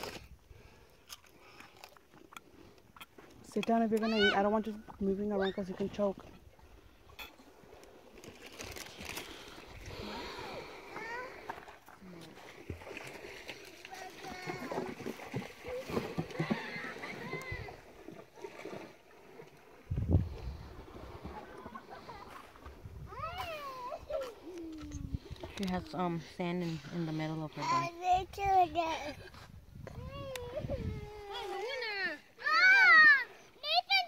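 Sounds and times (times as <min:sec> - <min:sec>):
water splashing: 0:00.0 - 0:29.4.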